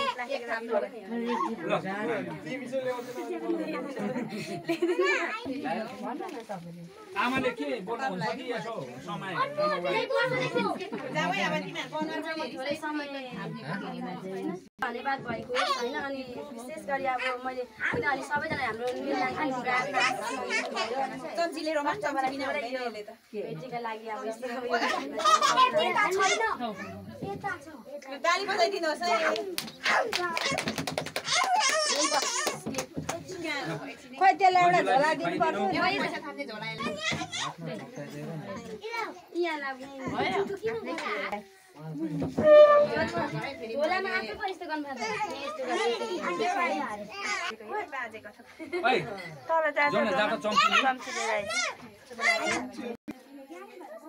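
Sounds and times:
children and adults talking: 0.0s - 54.0s
people chattering: 0.0s - 54.0s.

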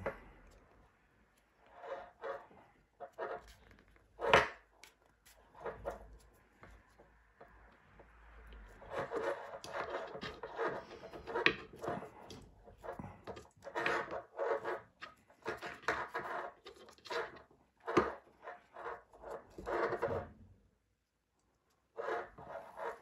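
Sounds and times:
cord scraping through a bracelet: 0.0s - 20.3s, 21.9s - 23.0s.

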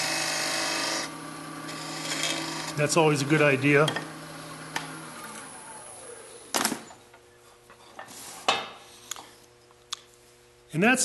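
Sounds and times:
wood lathe spinning down: 0.0s - 6.6s.

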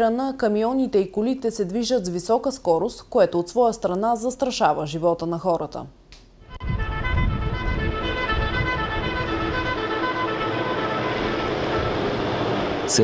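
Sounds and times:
background music: 6.4s - 13.0s
trucks driving past: 6.5s - 13.0s.

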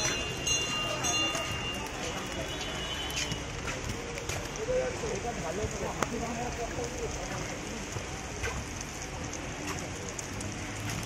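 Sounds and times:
drops ticking: 0.0s - 11.0s
rain on wet paving: 0.0s - 11.0s.

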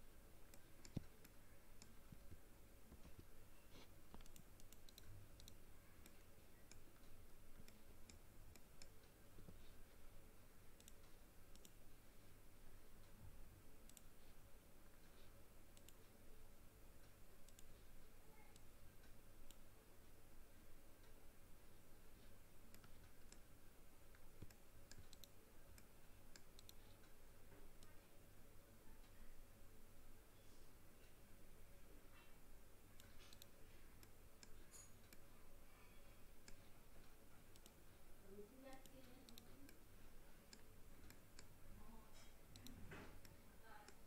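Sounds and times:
computer mouse clicks: 0.4s - 9.6s, 10.8s - 11.8s, 13.8s - 14.2s, 15.0s - 16.2s, 17.0s - 19.6s, 22.2s - 23.5s, 24.1s - 28.0s, 33.0s - 35.3s, 36.4s - 37.8s, 38.6s - 39.9s, 40.5s - 44.0s.

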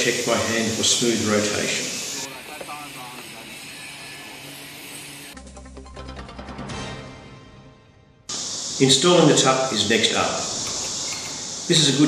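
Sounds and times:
faint workshop background: 0.0s - 5.4s, 8.3s - 12.0s.

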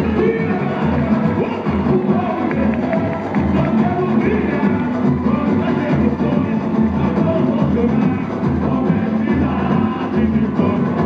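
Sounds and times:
deep bass drum beats: 0.0s - 11.0s
samba drums: 0.0s - 11.0s
voices singing: 0.0s - 11.0s.

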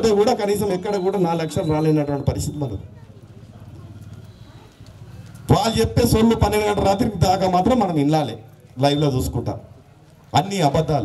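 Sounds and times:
faint outdoor gathering noise: 0.0s - 11.0s.

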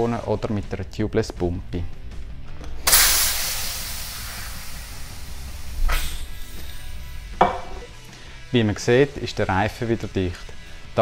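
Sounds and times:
compressed air hissing into tyre: 2.8s - 7.9s.

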